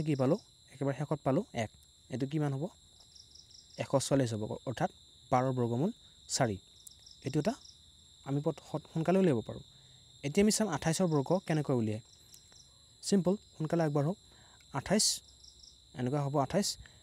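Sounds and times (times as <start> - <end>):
person speaking: 7.2 - 7.6, 8.2 - 12.0, 13.0 - 15.2, 16.0 - 16.8.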